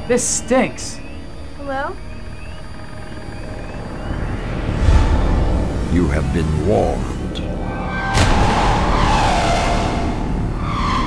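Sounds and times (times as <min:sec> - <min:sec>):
low steady rumble: 0:01.7 - 0:11.0
deep hit with whoosh: 0:04.6 - 0:11.0.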